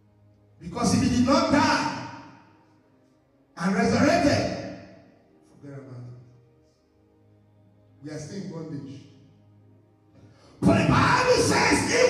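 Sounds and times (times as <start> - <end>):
man shouting into microphone: 10.6 - 12.0.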